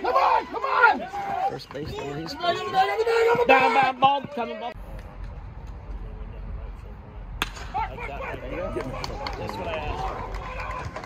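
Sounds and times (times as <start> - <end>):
baseball bat cracking ball: 7.4 - 7.9.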